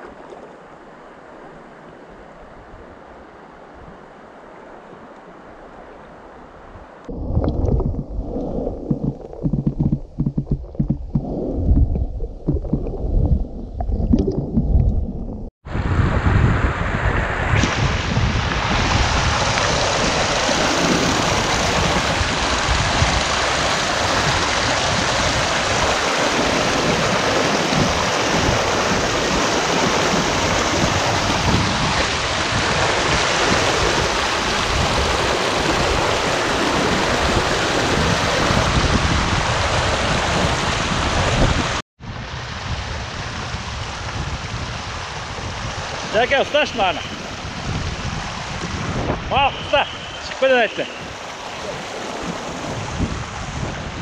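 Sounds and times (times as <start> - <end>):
stream rushing over rocks: 17.6 - 54.0.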